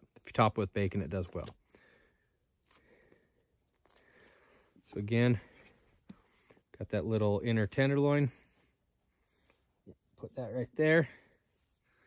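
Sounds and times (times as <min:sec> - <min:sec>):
soft tearing of meat: 0:01.0 - 0:05.2.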